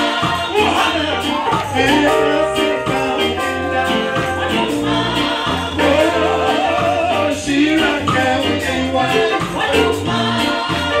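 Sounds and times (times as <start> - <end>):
band with bass and percussion: 0.0 - 11.0
congregation singing along: 0.0 - 11.0
lead singer on microphone: 0.0 - 11.0.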